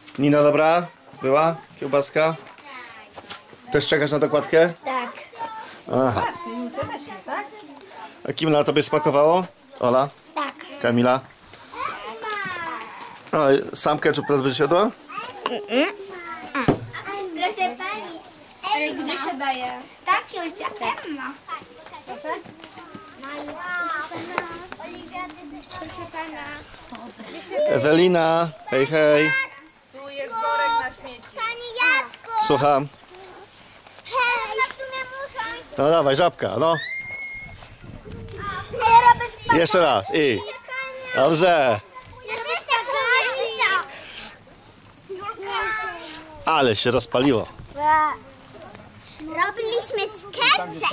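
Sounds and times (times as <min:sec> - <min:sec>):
children's voices: 0:00.7 - 0:50.9
young girls talking excitedly: 0:00.8 - 0:13.3, 0:14.0 - 0:46.7, 0:47.5 - 0:50.9.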